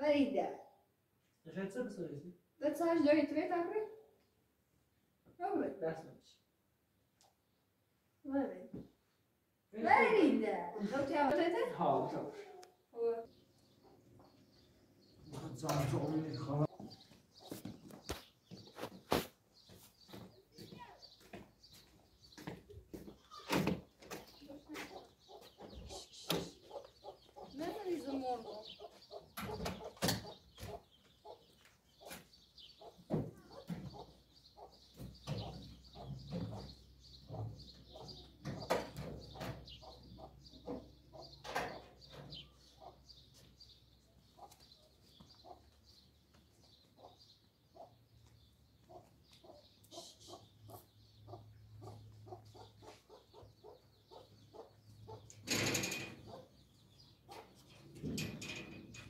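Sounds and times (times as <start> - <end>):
chickens clucking: 13.6 - 59.0.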